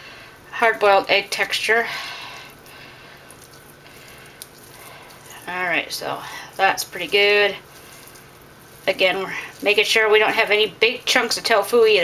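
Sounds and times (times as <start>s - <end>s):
tofu squishing by hand: 0.4s - 12.0s.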